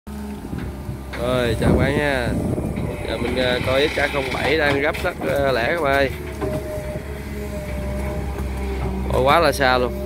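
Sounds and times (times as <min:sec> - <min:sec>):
excavator diesel engine hum: 0:00.1 - 0:10.0.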